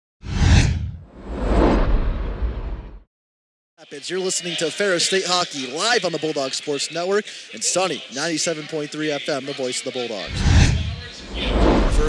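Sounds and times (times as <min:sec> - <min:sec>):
whoosh sound effects: 0:00.2 - 0:03.0, 0:10.3 - 0:12.0
low rumble: 0:00.3 - 0:03.0, 0:10.3 - 0:12.0.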